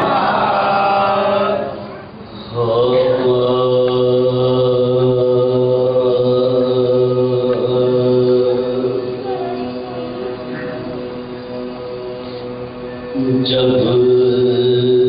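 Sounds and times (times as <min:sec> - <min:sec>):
man chanting unaccompanied: 0:00.0 - 0:15.0.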